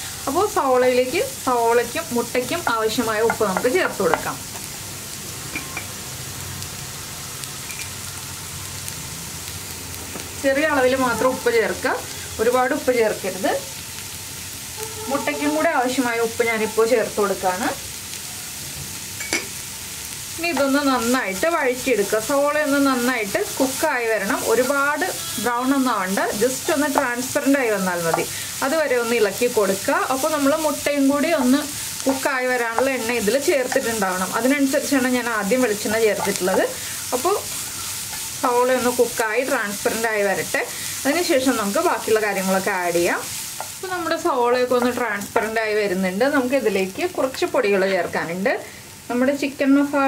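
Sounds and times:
vegetables sizzling in hot oil: 0.0s - 50.0s.

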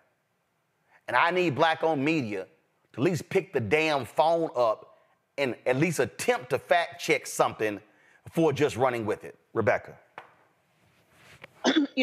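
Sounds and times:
woman speaking: 11.7s - 12.0s.

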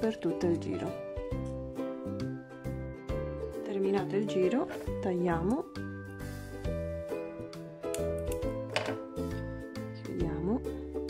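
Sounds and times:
instrumental music: 0.0s - 11.0s.

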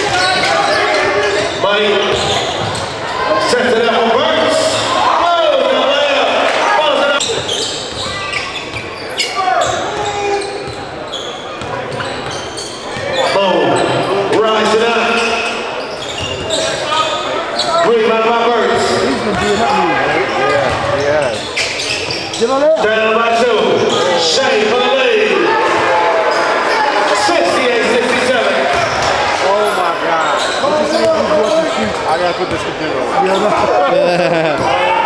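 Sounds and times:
people shouting and talking: 0.0s - 35.0s.

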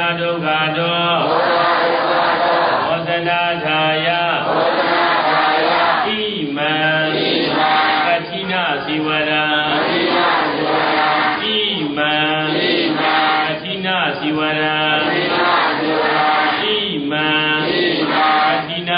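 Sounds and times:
person chanting: 0.0s - 18.9s.

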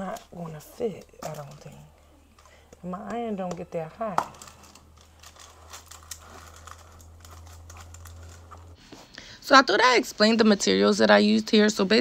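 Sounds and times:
low hum: 0.2s - 9.4s
foil and paper rustling: 4.4s - 8.8s.

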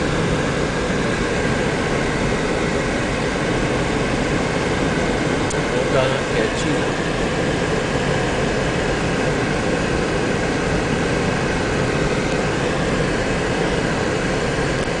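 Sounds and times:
car engine: 0.0s - 15.0s.

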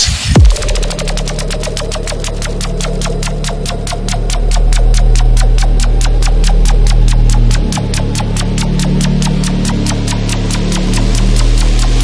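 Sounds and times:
droning synth bass: 0.0s - 12.0s
fast ticking hi-hats: 0.0s - 12.0s.

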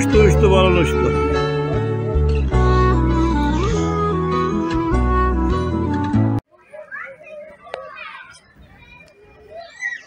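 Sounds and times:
children chattering and calling: 6.4s - 10.0s.

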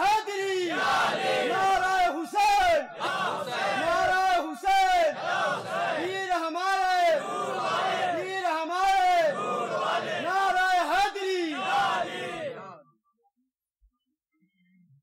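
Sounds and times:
crowd chanting: 0.0s - 12.8s.

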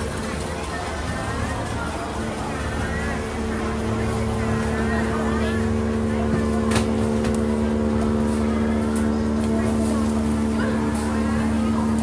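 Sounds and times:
motorboat engine running: 0.0s - 12.0s.

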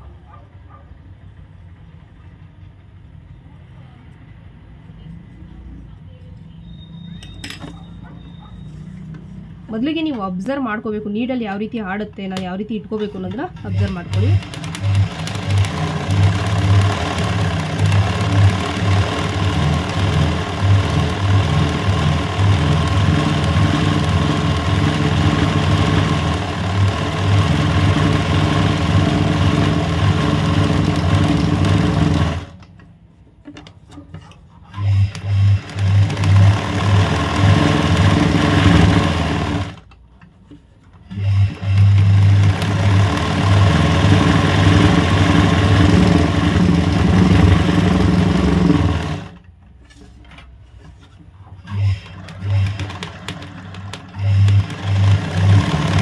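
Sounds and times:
electric sewing machine running: 13.6s - 32.6s, 34.8s - 39.9s, 41.1s - 49.5s, 51.7s - 56.0s.

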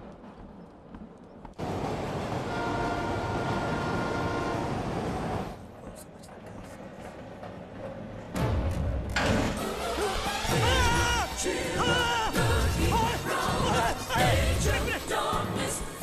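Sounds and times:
train rushing past: 1.6s - 5.7s
train horn chord: 2.3s - 5.1s.

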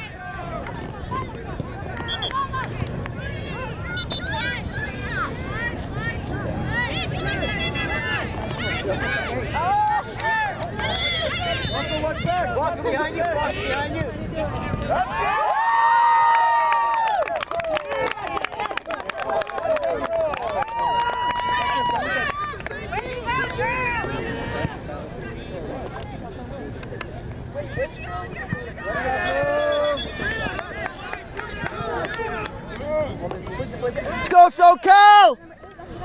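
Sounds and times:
crowd shouting: 1.8s - 13.8s, 27.6s - 36.0s
loud drawn-out shout: 34.2s - 35.4s.

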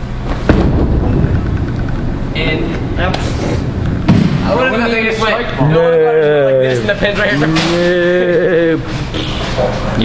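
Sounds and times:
bowling ball rolling rumble: 0.2s - 5.3s.

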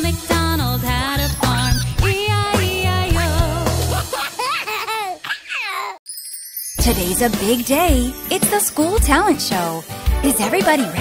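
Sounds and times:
baby giggling: 4.0s - 6.0s.

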